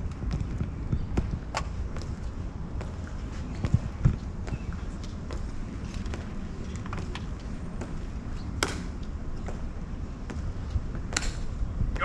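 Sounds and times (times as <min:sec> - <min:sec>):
low wind rumble: 0:00.0 - 0:12.0.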